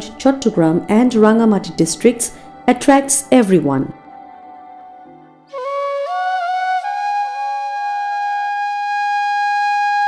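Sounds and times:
flute holding long note: 0:05.5 - 0:10.0.

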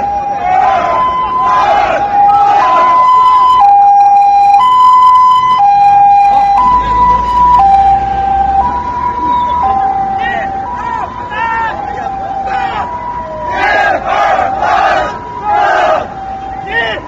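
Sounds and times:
crowd voices: 0:00.0 - 0:03.6
two-tone vehicle siren: 0:00.0 - 0:17.0.

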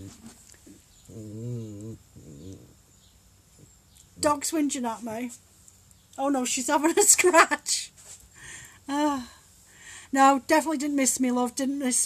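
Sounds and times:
dog whining: 0:01.0 - 0:02.8.

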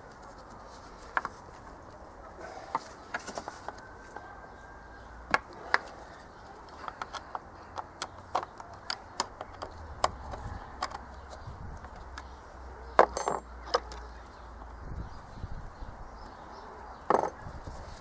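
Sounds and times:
plastic parts clicking and knocking: 0:06.7 - 0:12.3.

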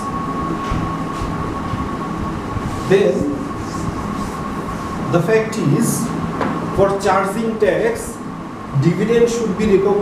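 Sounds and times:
low rumbling background noise: 0:00.0 - 0:10.0
thin high whine: 0:00.0 - 0:10.0.

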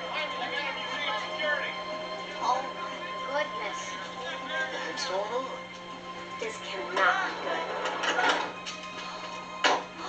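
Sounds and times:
film music through tv speaker: 0:00.0 - 0:10.0
steady hum: 0:00.0 - 0:10.0.

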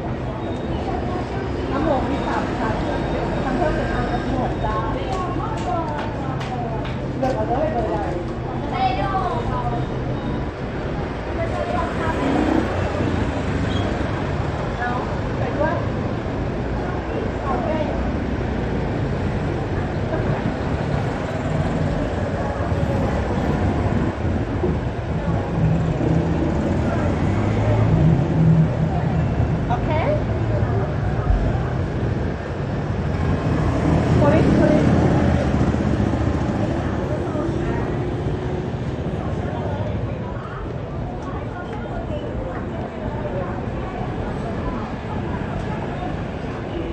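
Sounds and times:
cars and motorbikes passing: 0:00.0 - 0:46.9
people talking: 0:00.0 - 0:46.9.

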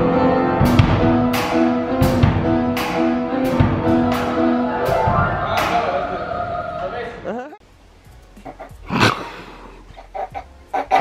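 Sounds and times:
live band music: 0:00.0 - 0:06.6
pitch glide: 0:03.9 - 0:07.4.

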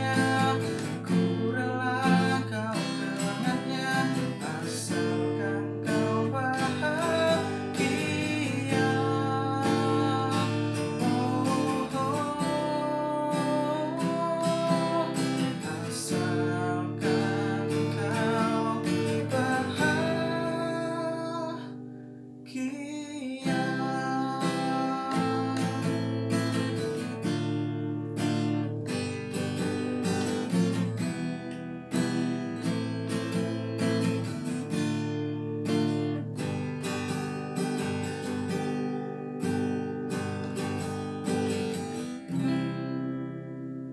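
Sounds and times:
acoustic guitar strumming chords: 0:00.0 - 0:43.9.

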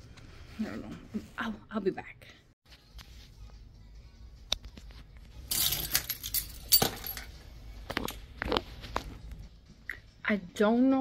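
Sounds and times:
clinking and rattling: 0:05.5 - 0:07.4.

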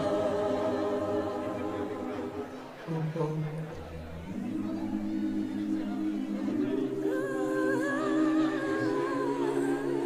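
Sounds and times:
high voice singing with vibrato: 0:00.0 - 0:10.0
voices humming a chord: 0:00.0 - 0:10.0.

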